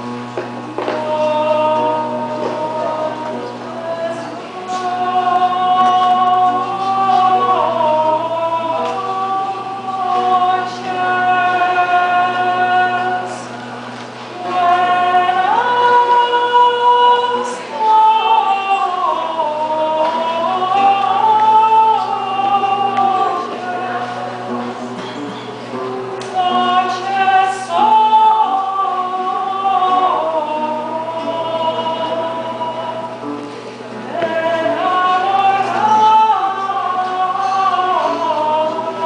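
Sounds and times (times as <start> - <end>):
women singing: 0.0 - 39.0.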